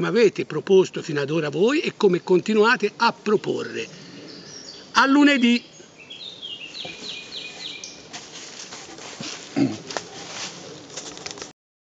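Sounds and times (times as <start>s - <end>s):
outdoor background noise: 0.0s - 11.6s
bird singing downward notes: 2.1s - 8.1s.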